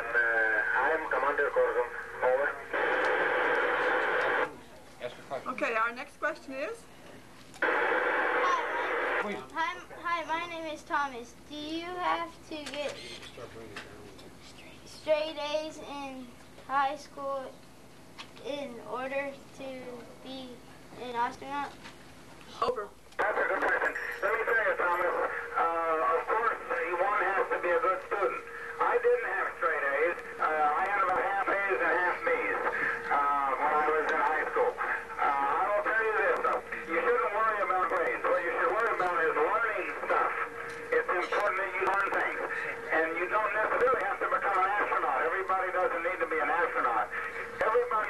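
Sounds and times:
garbled radio voice: 0.0 - 4.5, 23.2 - 48.0
steady radio tone: 0.0 - 4.6, 7.6 - 10.3, 23.2 - 48.0.

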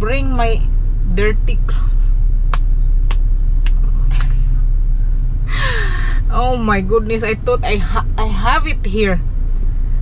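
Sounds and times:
car cabin rumble: 0.0 - 10.0
person breathing: 5.5 - 6.3.

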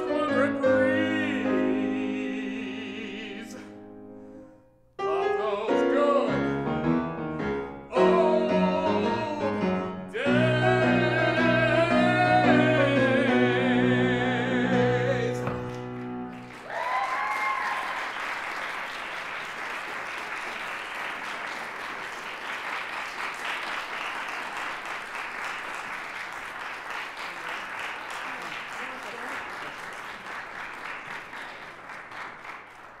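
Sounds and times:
audience applause: 15.5 - 33.0.

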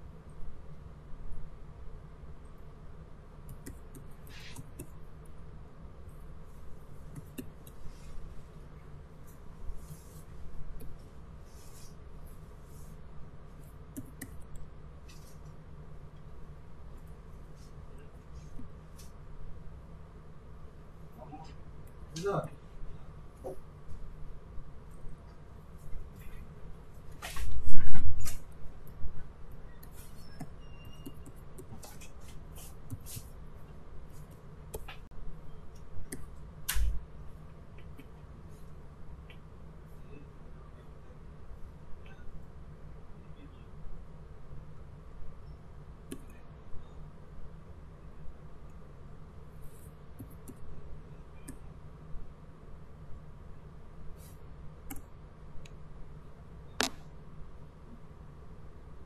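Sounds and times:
steady low hum: 0.0 - 59.0.

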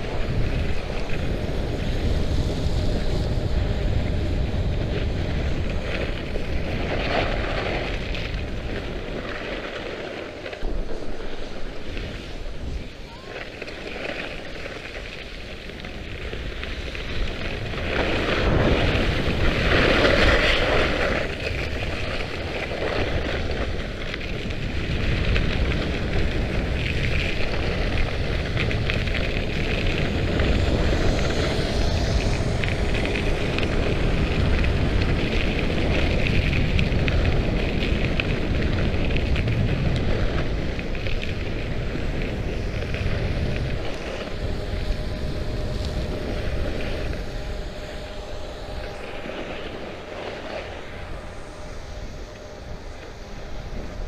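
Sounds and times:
skis scraping on icy snow: 0.0 - 54.0
wind rushing over microphone: 0.0 - 54.0.

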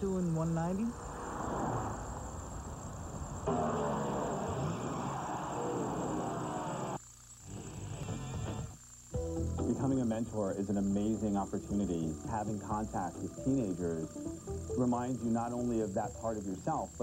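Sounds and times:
loud roar: 3.4 - 7.0
music: 7.5 - 17.0.

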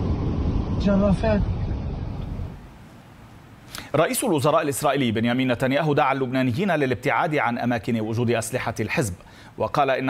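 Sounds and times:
wind and road noise in a car: 0.0 - 2.8.

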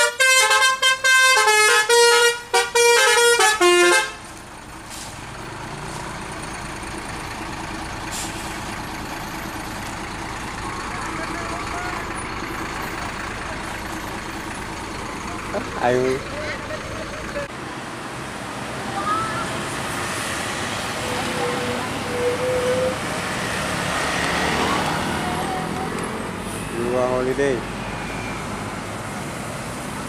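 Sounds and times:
multi-tone air horn tune: 0.0 - 4.2
bus engine and tyres passing: 0.0 - 30.0.

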